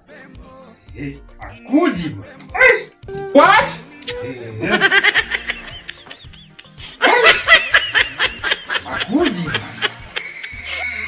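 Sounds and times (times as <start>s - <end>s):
person laughing high-pitched: 3.4s - 11.0s.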